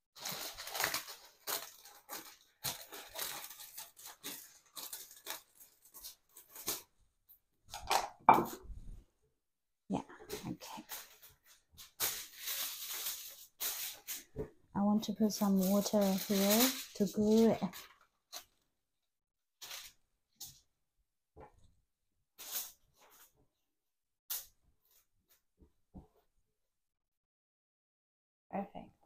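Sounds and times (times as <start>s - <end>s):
aluminium foil crinkling: 0.2s - 6.9s, 10.8s - 14.3s, 14.9s - 18.6s, 19.6s - 20.6s, 22.4s - 23.3s.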